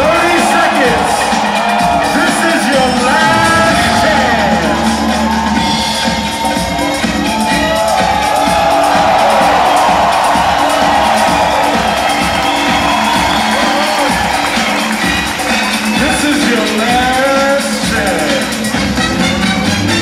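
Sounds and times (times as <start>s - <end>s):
crowd cheering and whooping: 0.0s - 17.5s
loud breakdance music: 0.0s - 20.0s.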